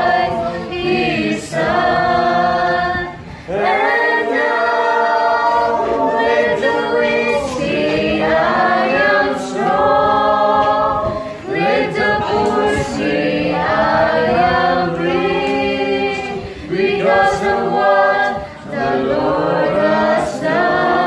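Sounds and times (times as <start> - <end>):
group singing a cappella: 0.0 - 21.0.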